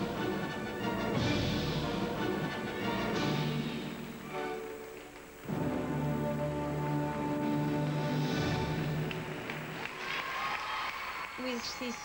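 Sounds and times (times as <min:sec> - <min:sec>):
gymnastics accompaniment music: 0:00.0 - 0:10.0
audience applause: 0:08.3 - 0:12.0.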